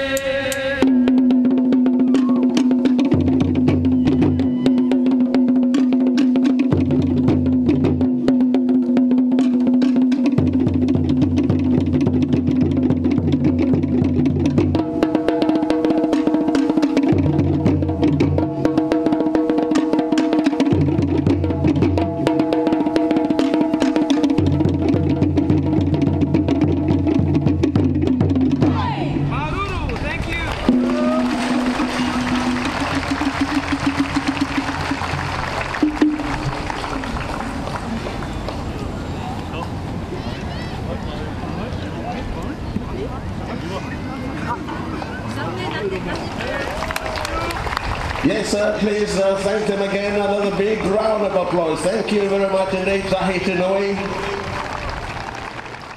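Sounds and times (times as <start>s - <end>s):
deep drum beats: 0.0s - 38.6s
crowd cheering: 2.0s - 2.7s, 3.9s - 5.4s, 28.6s - 42.5s, 43.1s - 55.9s
applause: 29.7s - 38.7s, 46.1s - 49.2s, 53.0s - 55.9s.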